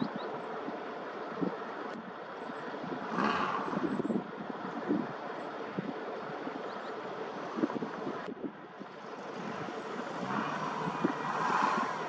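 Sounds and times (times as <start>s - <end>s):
wind buffeting microphone: 2.5s - 12.0s.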